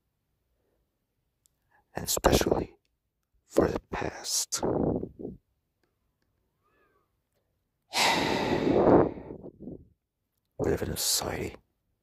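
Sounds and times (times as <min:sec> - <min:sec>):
man sighing: 0:07.9 - 0:09.4.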